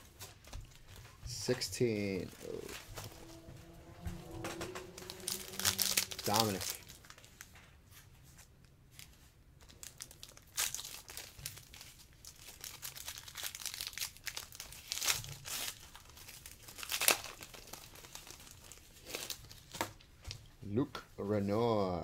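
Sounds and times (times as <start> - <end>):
wrapper crinkling and tearing: 4.3 - 7.6, 8.9 - 20.0.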